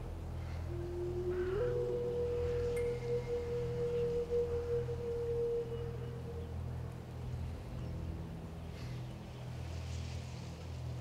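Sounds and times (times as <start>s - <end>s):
low steady drone: 0.0s - 11.0s.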